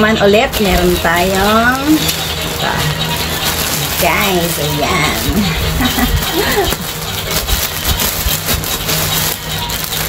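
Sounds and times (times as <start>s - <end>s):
background music: 0.0s - 10.0s
plastic bag crinkling: 0.3s - 10.0s.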